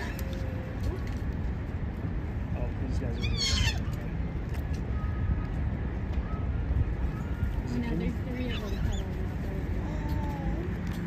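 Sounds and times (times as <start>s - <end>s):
otter squealing: 3.1s - 3.9s.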